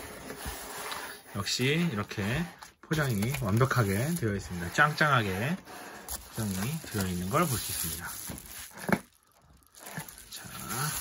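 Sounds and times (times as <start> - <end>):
bubble wrap crinkling: 2.9 - 11.0.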